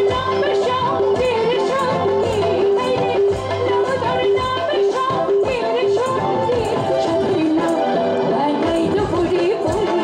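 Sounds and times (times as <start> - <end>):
band playing: 0.0 - 10.0
drum beating: 0.0 - 10.0
woman singing into microphone: 0.0 - 10.0.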